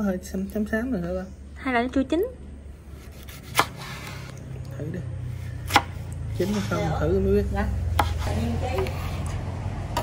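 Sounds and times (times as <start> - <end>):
knife slicing fruit: 2.9 - 4.6, 5.4 - 6.9, 7.8 - 9.4.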